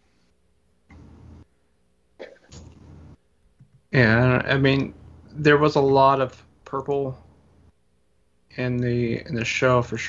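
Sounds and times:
person clearing throat: 2.2s - 2.6s.

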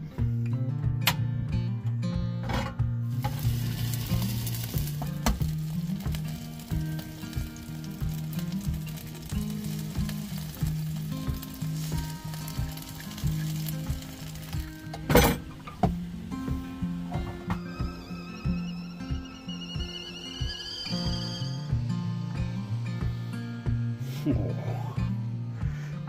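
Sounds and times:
background music: 0.0s - 26.0s
food sizzling in a frying pan: 3.1s - 18.3s.

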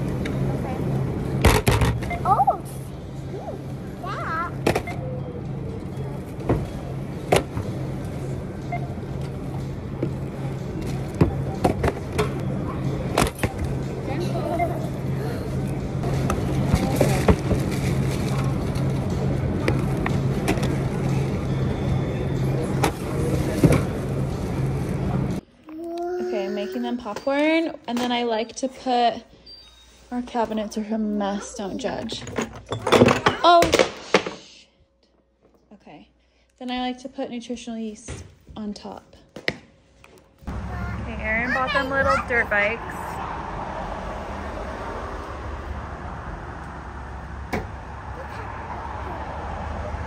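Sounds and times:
voices: 40.5s - 44.0s.

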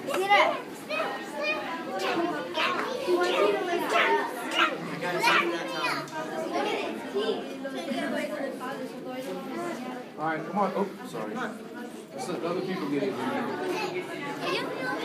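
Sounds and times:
children's chatter: 0.0s - 15.0s.

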